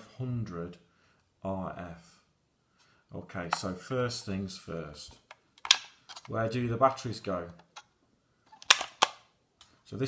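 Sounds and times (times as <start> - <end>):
plastic cover clicks shut: 8.6 - 9.2.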